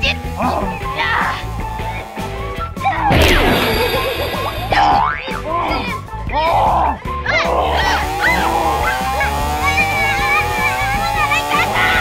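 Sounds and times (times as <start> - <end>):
rising glide effect: 3.1 - 5.2
wobbling springy cartoon effect: 3.1 - 5.4.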